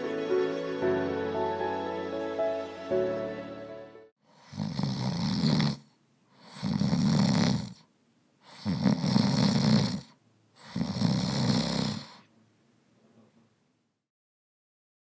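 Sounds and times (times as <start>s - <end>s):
loud rattling snoring: 4.3s - 7.8s, 8.5s - 12.2s.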